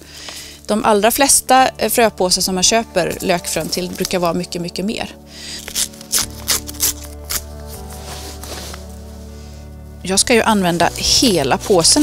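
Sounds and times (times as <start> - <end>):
soft background music: 0.0 - 12.0
paper packet rustling: 5.5 - 9.1.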